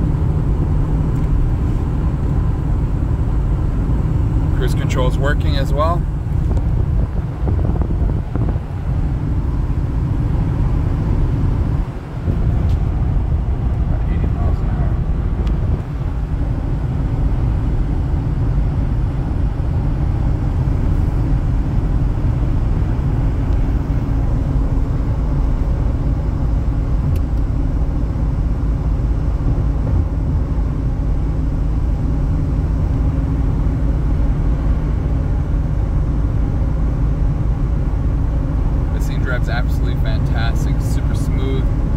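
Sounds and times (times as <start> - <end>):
car engine noise: 0.0 - 41.9
road and tyre rumble: 0.0 - 41.9.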